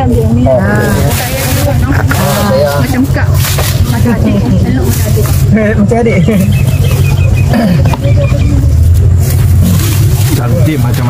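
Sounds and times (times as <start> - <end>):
loud low engine hum: 0.0 - 11.0.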